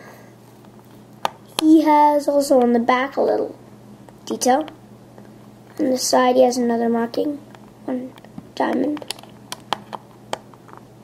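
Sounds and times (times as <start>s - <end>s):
faint steady hum: 0.0s - 11.0s
plastic toy clicks and taps: 7.5s - 10.5s.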